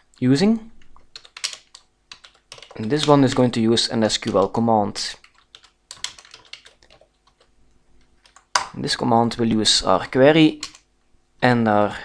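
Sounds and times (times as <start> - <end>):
computer keyboard typing: 0.8 - 4.5, 5.1 - 7.5, 8.2 - 8.7, 10.6 - 10.9.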